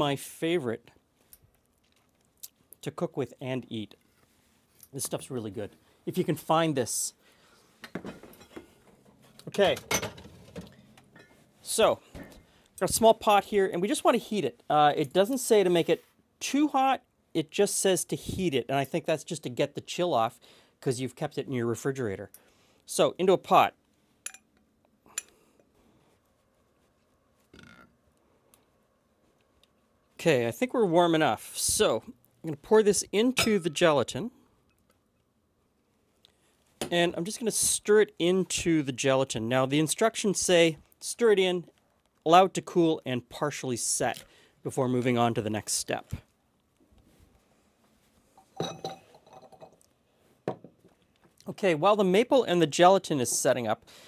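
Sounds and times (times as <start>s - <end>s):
soft stirring sound: 25.6s - 30.2s
glass clinking on wood: 33.4s - 33.8s, 48.4s - 49.8s.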